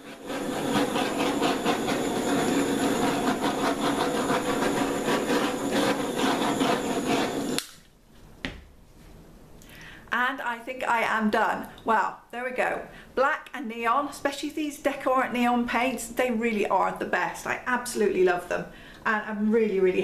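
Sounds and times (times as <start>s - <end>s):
butane torch hissing: 0.0s - 7.8s.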